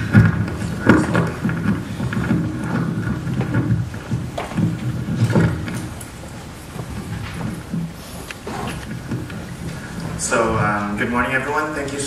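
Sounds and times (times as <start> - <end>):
microphone handling rumble: 0.0 - 11.5.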